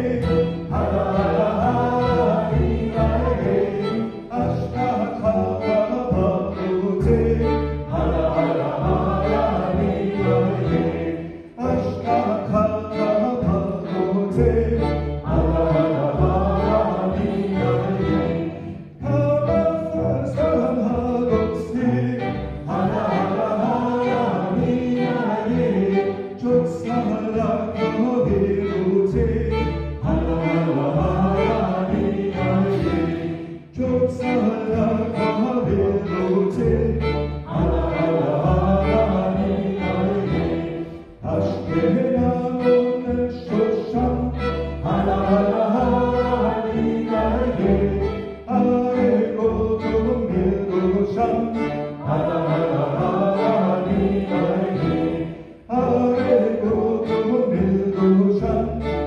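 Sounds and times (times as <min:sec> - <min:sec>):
bowed violins: 0:00.0 - 0:59.0
double bass: 0:00.0 - 0:59.0
string orchestra playing folk dance: 0:00.0 - 0:59.0.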